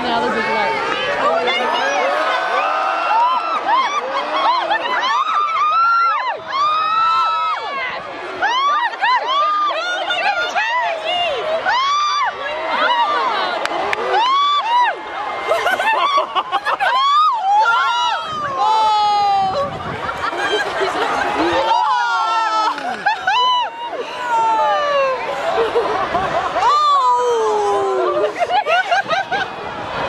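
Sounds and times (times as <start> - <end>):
crowd cheering and shouting: 0.0 - 30.0.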